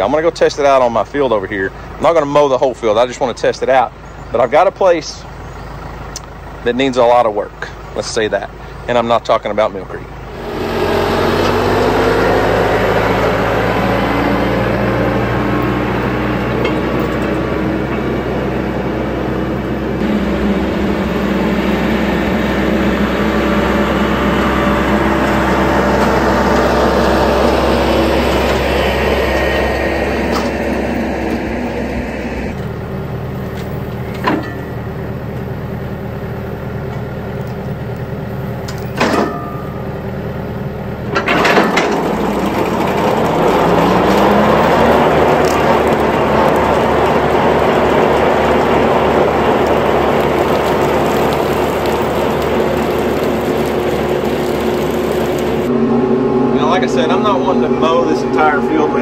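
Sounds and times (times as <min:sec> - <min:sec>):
mower blades whining: 0:00.0 - 0:59.0
tractor engine running: 0:00.0 - 0:59.0.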